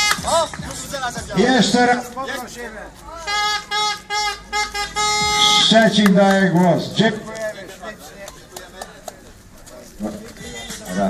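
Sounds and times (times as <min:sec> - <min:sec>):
horn blasts: 0:03.1 - 0:07.1.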